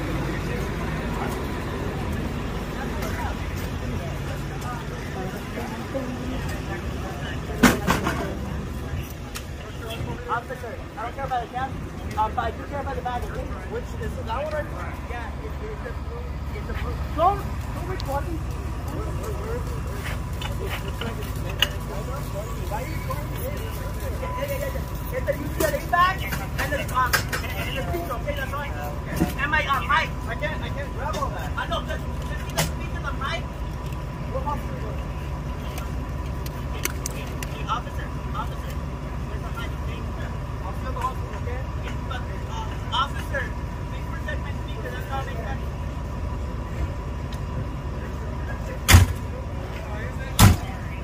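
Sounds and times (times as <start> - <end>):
ambulance engine idling: 0.0 - 51.0
indistinct voices: 0.0 - 51.0
vehicle door slamming: 48.9 - 49.2, 50.4 - 50.8.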